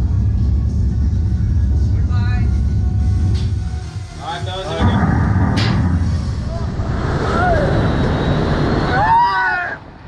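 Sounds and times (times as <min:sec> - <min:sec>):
loud low rumble: 0:00.0 - 0:10.0.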